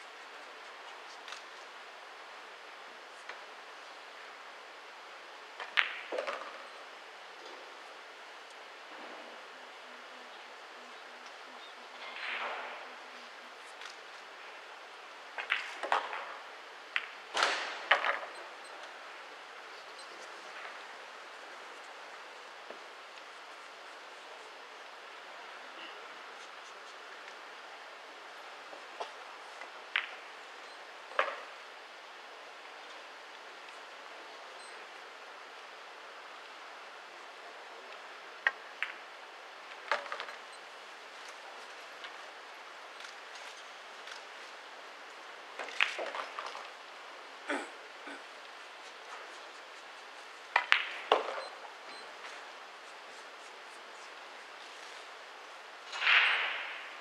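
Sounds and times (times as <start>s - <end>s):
room hiss: 0.0s - 57.0s
pool ball rattle: 5.6s - 6.7s, 15.4s - 18.4s, 45.6s - 46.8s, 50.5s - 51.7s
pool balls clicking: 5.6s - 6.7s, 15.4s - 18.5s, 29.9s - 30.3s, 45.6s - 46.8s, 50.5s - 52.3s.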